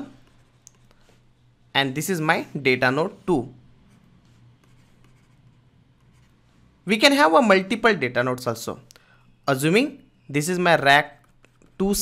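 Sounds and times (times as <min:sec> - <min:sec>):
man speaking: 0:01.7 - 0:03.6, 0:06.8 - 0:08.9, 0:09.5 - 0:11.2, 0:11.8 - 0:12.0
stylus scratching on tablet: 0:02.9 - 0:06.8, 0:11.0 - 0:12.0.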